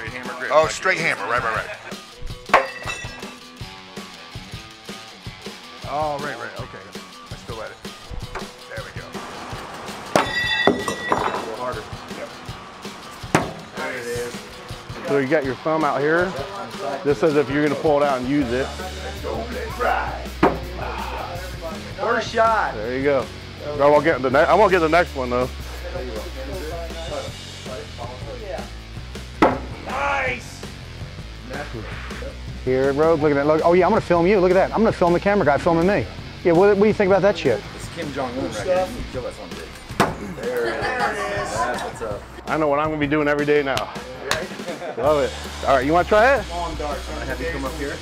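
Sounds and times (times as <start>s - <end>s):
background music: 0.0s - 48.0s
steel blade ringing: 10.2s - 11.5s
knife hitting wooden board: 13.3s - 13.6s, 20.4s - 20.7s, 29.4s - 29.8s.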